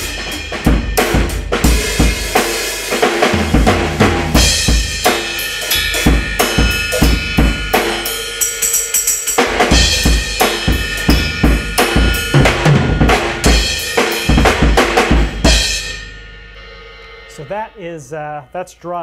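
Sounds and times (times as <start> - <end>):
acoustic drum kit playing: 0.0 - 18.7.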